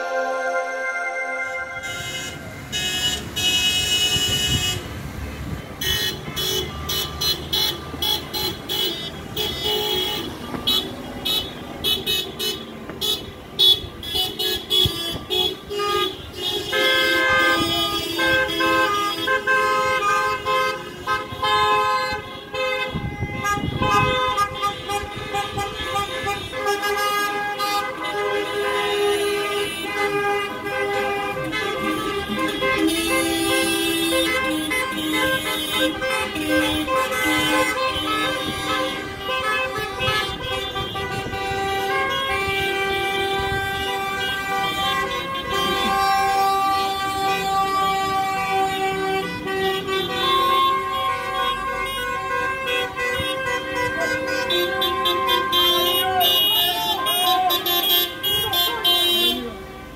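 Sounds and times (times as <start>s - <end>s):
car horns honking: 0.0s - 59.9s.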